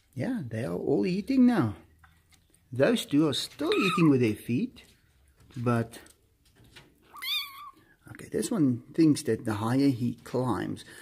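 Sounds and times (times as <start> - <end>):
kitten meowing: 3.7 - 4.1, 7.1 - 7.8.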